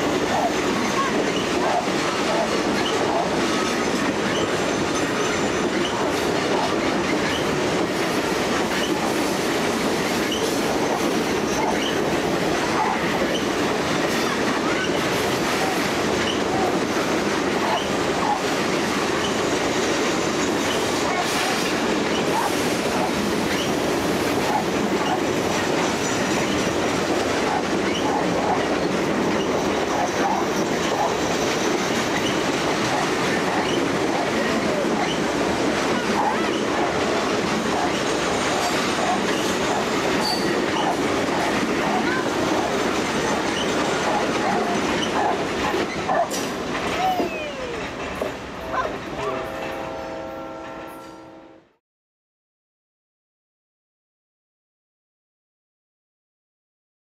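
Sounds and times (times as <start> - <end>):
clickety-clack over rail joints: 0.0 - 51.2
train wheels rumbling on rail: 0.0 - 51.4.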